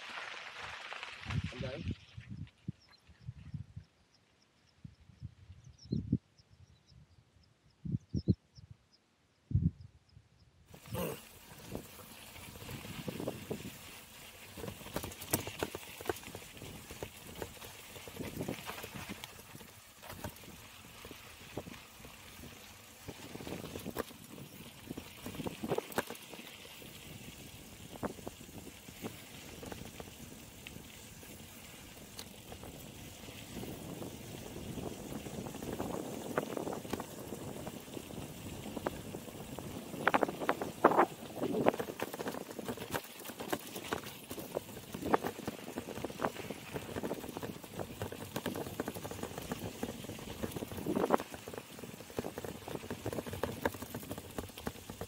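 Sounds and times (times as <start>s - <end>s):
bike tyres rumbling on dirt: 0.0s - 3.3s, 10.7s - 55.0s
bike knocking and rattling: 10.8s - 55.0s.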